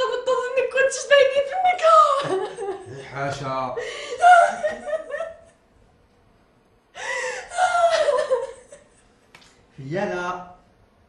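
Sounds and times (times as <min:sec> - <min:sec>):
person giggling: 0:07.5 - 0:08.9.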